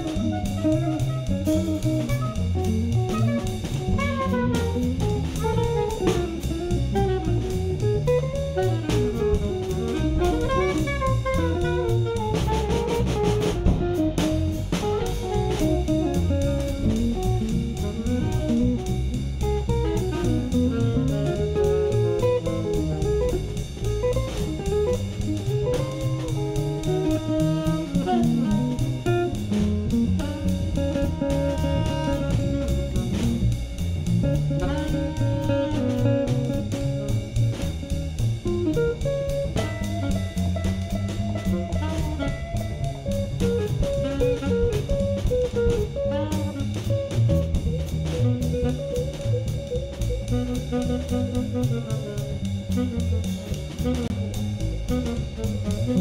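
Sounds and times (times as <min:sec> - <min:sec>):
drum kit: 0:00.0 - 0:56.0
electric guitar: 0:00.0 - 0:56.0
upright bass: 0:00.0 - 0:56.0.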